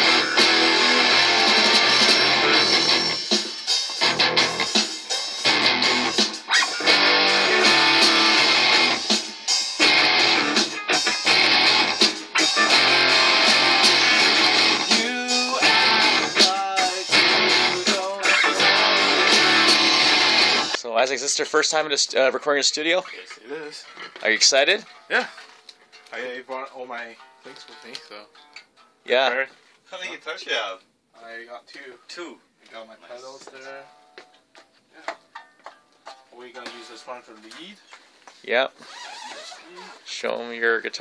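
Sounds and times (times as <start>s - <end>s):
electric bass playing: 0.0s - 3.3s, 4.0s - 4.8s, 5.4s - 9.1s, 9.8s - 20.8s
band music through monitors: 0.0s - 20.8s.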